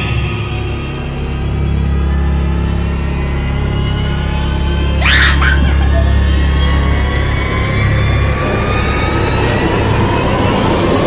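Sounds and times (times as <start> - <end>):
loud low drone: 0.0 - 11.0.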